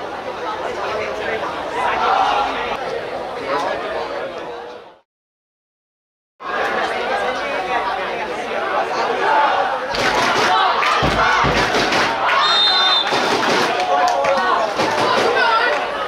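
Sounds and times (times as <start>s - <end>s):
babble of voices shouting: 6.4s - 16.0s
referee's whistle: 12.3s - 13.2s.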